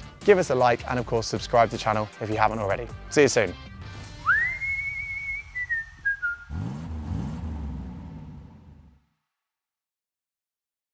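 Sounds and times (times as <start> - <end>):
whistle-like descending tone: 4.2 - 6.6
low rising sweeps: 4.3 - 9.0.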